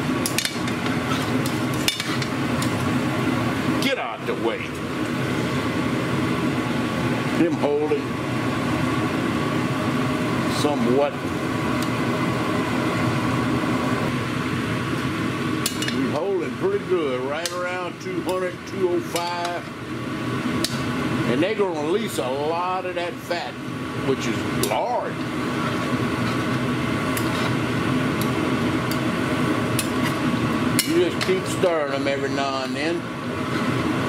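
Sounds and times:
exhaust hood fan whirring: 0.0s - 34.0s
pork fat frying: 23.0s - 34.0s.

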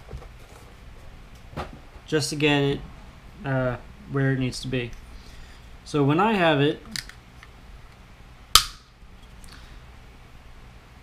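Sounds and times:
sharp click of plastic parts: 6.9s - 7.2s, 8.6s - 8.8s.

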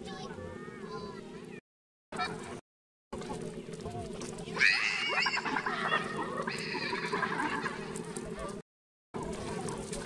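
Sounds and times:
macaque high-pitched calls: 4.6s - 7.8s.

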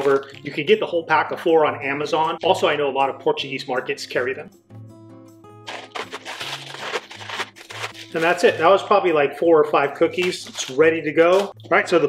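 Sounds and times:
biscuits being crushed: 0.0s - 0.5s, 5.6s - 8.6s, 10.2s - 11.7s
plastic zip bag crinkling: 0.0s - 0.5s, 5.6s - 8.8s, 10.2s - 11.6s
light background music: 0.0s - 12.0s.

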